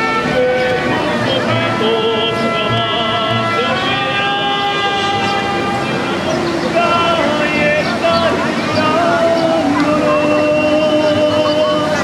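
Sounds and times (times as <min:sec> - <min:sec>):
mariachi band with violins and trumpets: 0:00.0 - 0:12.0.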